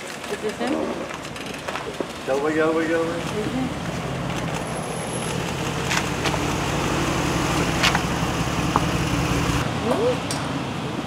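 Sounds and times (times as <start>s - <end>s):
engines idling: 0.0s - 11.0s
traffic noise: 0.0s - 11.0s.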